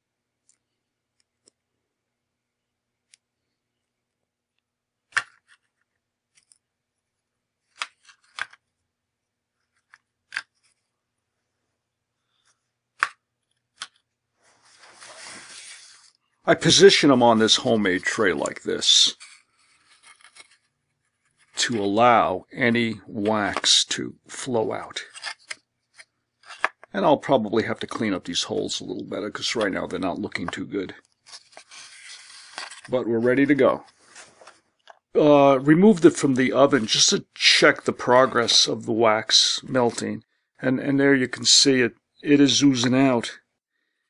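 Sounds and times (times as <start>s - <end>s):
paper pieces clicking and scraping: 7.6s - 8.6s, 9.7s - 10.8s, 18.4s - 21.9s, 25.0s - 26.9s, 31.2s - 32.9s
paper bracelet pieces clicking: 9.7s - 10.8s.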